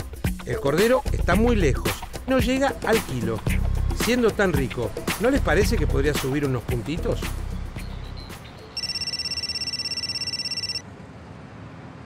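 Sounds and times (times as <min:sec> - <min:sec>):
phone ringing trill: 0:08.8 - 0:10.8.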